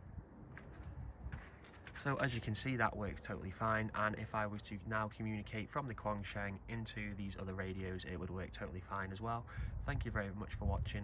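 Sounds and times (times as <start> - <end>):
faint low wind rumble: 0.0 - 11.0.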